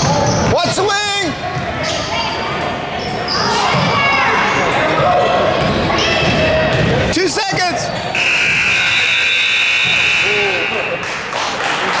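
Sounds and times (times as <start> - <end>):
scoreboard buzzer: 8.2 - 11.1.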